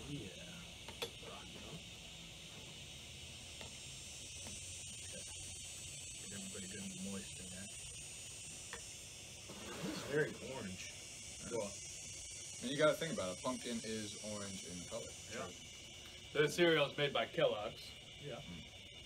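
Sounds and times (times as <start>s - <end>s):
high insect drone: 0.0s - 19.0s
steady high-pitched hiss: 0.0s - 19.0s.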